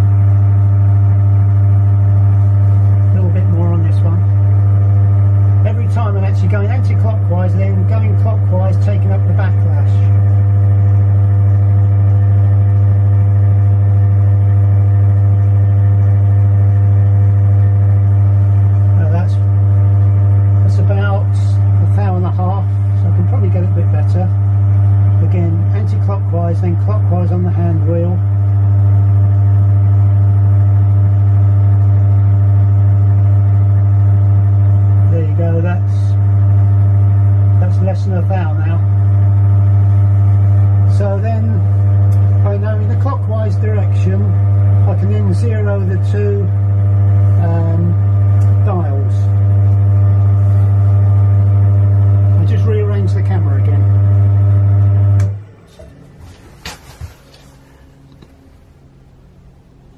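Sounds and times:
milling machine motor hum: 0.0s - 59.9s.

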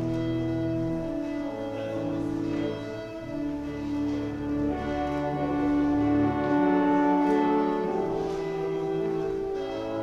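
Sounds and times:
church organ sustained chords: 0.0s - 10.0s.

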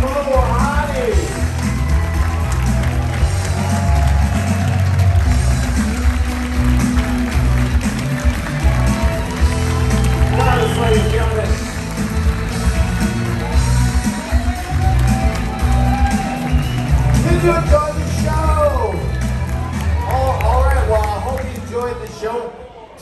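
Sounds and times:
band music with steady bass: 0.0s - 22.2s.

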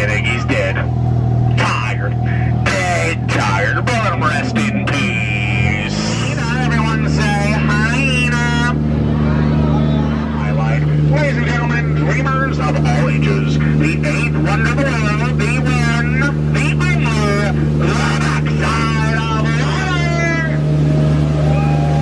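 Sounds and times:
people talking: 0.0s - 0.9s, 1.5s - 20.6s
boat motor humming: 0.0s - 22.0s.

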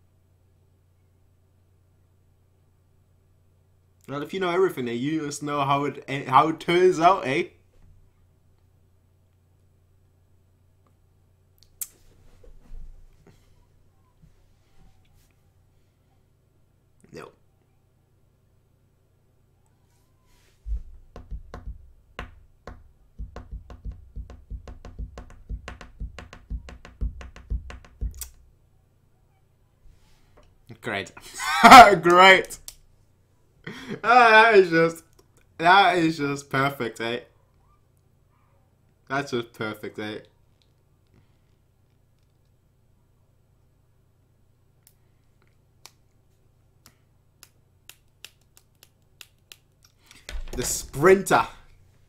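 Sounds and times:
knocks and taps with deep thuds: 20.7s - 28.4s.

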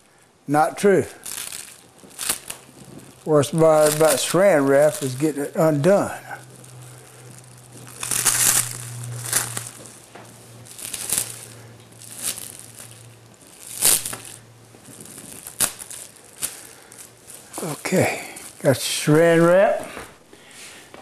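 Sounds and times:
cling film crinkling: 0.0s - 19.6s.

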